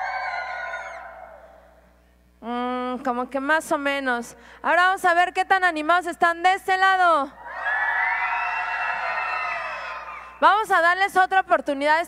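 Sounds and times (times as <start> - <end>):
children shouting and cheering: 0.0 - 1.6, 7.4 - 10.4.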